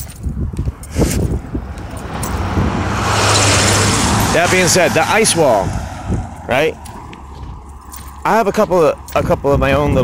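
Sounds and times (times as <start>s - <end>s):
road vehicle approaching: 0.0s - 10.0s.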